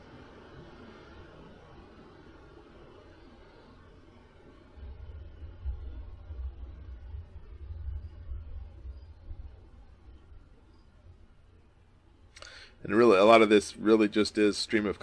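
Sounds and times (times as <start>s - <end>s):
faint steady hiss: 0.0s - 15.0s
storm rumble: 0.0s - 15.0s.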